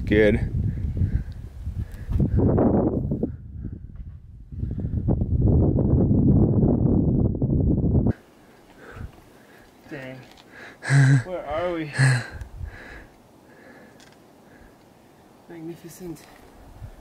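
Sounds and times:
low rumbling microphone noise: 0:00.0 - 0:08.2.

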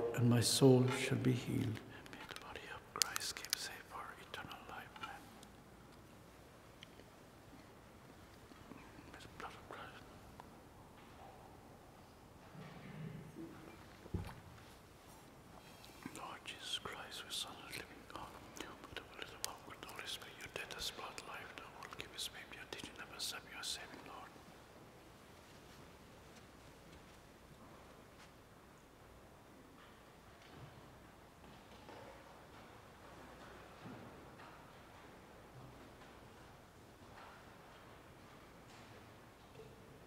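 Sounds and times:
person whispering: 0:00.0 - 0:05.4, 0:08.7 - 0:10.2, 0:15.6 - 0:24.4.

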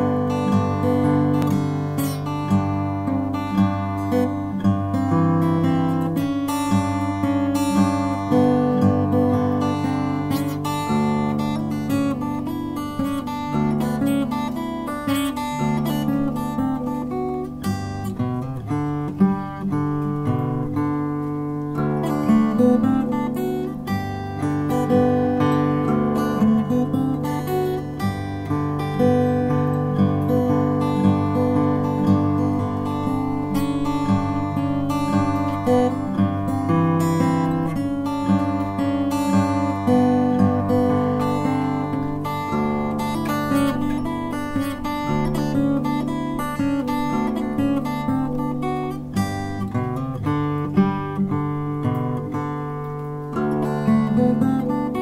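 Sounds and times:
acoustic guitar music: 0:00.0 - 0:55.0.

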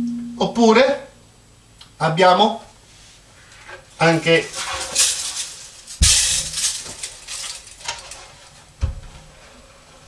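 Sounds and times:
drums clattering: 0:05.9 - 0:07.1.

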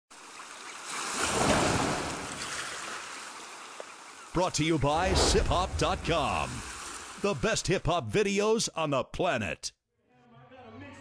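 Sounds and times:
ocean wave washing in: 0:01.2 - 0:03.0, 0:04.8 - 0:07.4.

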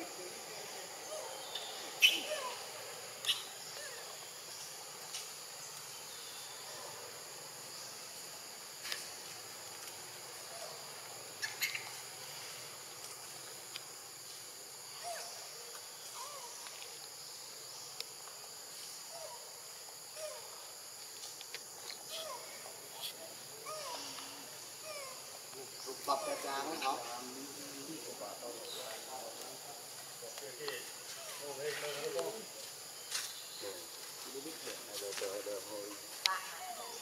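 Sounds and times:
high-pitched insect chorus: 0:00.0 - 0:37.0.

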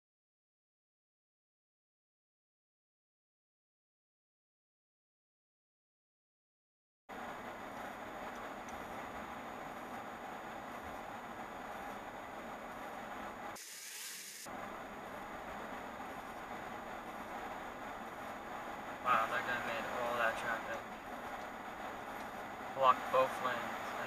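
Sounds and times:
car interior background noise: 0:07.1 - 0:13.6, 0:14.4 - 0:24.0
man talking: 0:19.0 - 0:20.9, 0:22.8 - 0:24.0.

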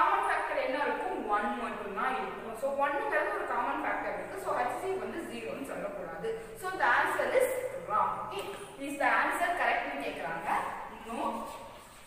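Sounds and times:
woman speaking: 0:00.0 - 0:12.0.

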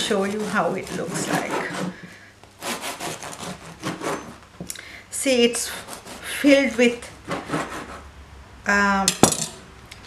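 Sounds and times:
knife sawing through crunchy bread crust: 0:00.0 - 0:02.0, 0:02.6 - 0:04.4, 0:05.6 - 0:08.1.

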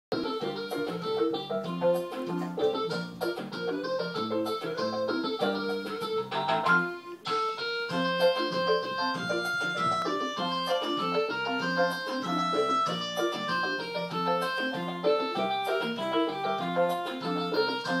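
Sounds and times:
electronic keyboard music: 0:00.1 - 0:18.0.

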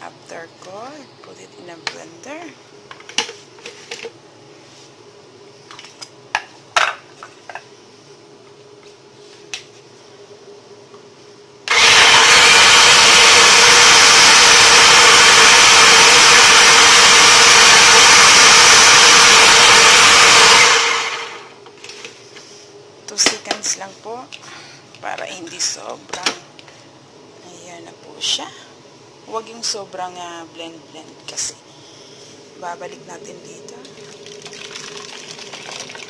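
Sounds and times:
blender running: 0:11.7 - 0:21.6.

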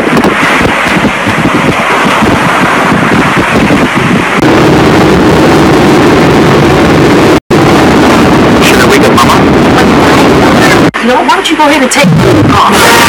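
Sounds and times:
waterfall rushing: 0:00.0 - 0:07.1.

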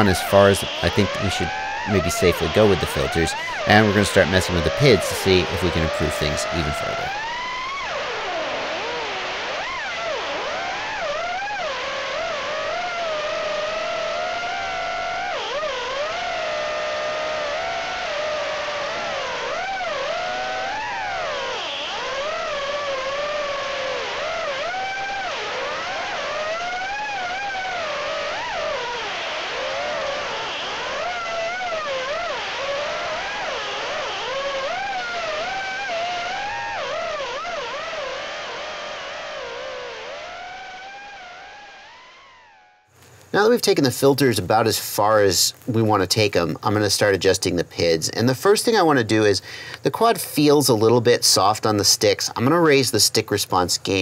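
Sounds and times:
drone motors whining: 0:00.0 - 0:42.9.

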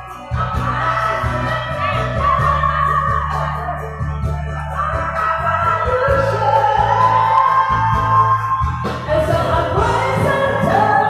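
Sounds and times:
backing music with bass beat: 0:00.0 - 0:11.0
woman singing amplified: 0:00.0 - 0:11.0.

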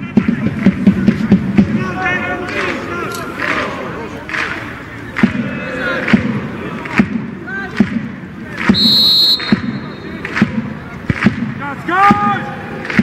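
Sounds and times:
crowd voices: 0:00.0 - 0:13.0
whistle blowing: 0:08.7 - 0:10.2.

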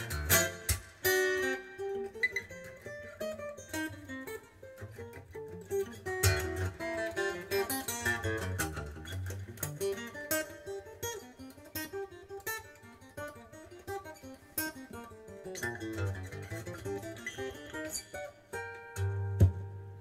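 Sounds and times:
fingerstyle acoustic guitar: 0:00.0 - 0:20.0.

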